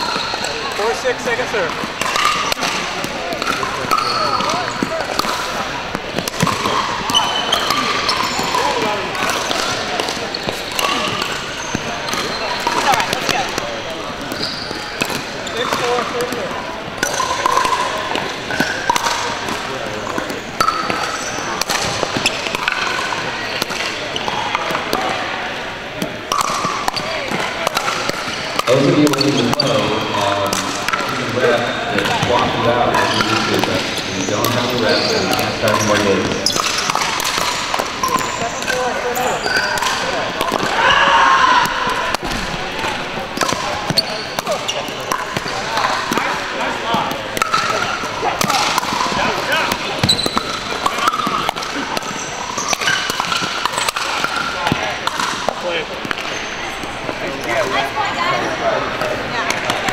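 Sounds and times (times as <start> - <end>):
paddles hitting plastic ball: 1.6 - 25.1, 35.3 - 38.9, 39.7 - 40.9, 41.6 - 56.3.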